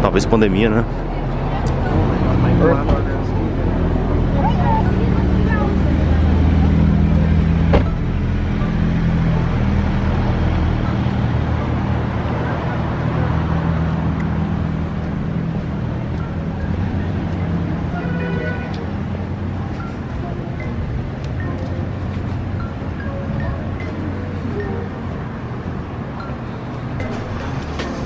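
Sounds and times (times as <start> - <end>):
vehicle engine hum: 0.0 - 28.0.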